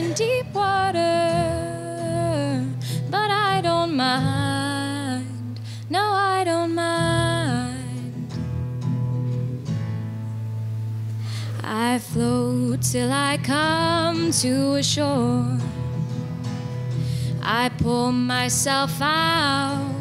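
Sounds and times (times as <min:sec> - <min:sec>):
girl singing: 0:00.0 - 0:08.3, 0:11.5 - 0:15.8, 0:17.3 - 0:20.0
acoustic guitar strumming: 0:00.0 - 0:20.0.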